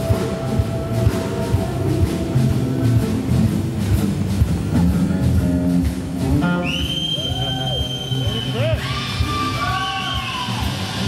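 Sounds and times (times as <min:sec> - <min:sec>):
rock band playing: 0:00.0 - 0:11.0.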